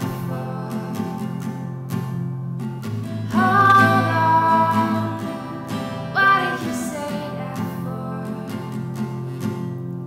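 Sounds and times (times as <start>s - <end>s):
woman singing folk ballad: 0.0s - 2.2s, 2.9s - 9.4s
acoustic guitar: 0.0s - 10.0s.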